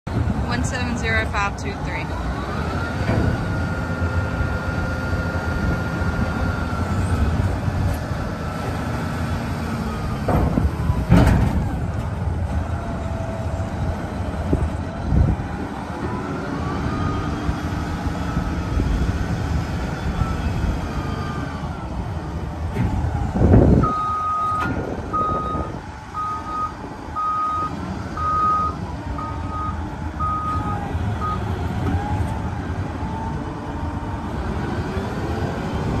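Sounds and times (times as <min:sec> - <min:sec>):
diesel engine running: 0:00.1 - 0:36.0
reverse alarm beeping: 0:23.8 - 0:31.4.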